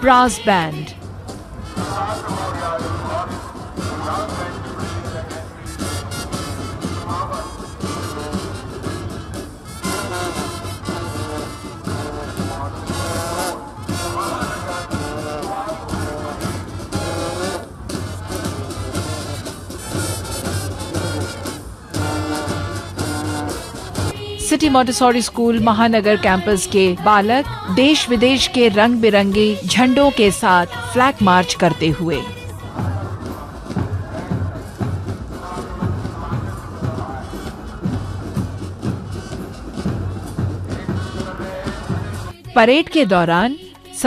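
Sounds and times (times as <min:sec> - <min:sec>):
brass band playing a march: 0:01.5 - 0:26.2, 0:28.1 - 0:42.3.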